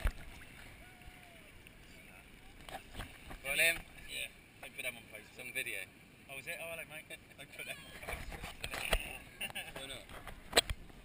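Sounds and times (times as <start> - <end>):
sharp water splash: 0.0 - 1.2
muffled water noise: 0.0 - 11.0.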